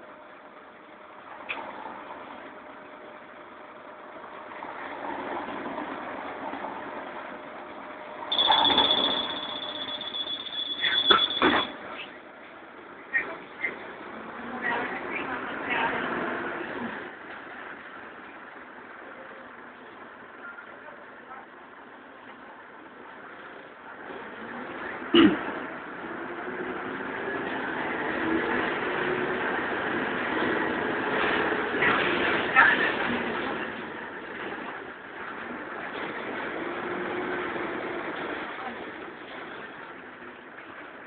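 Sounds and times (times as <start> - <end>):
bus diesel engine running: 0.0 - 41.0
high-pitched door beeper: 8.3 - 11.8.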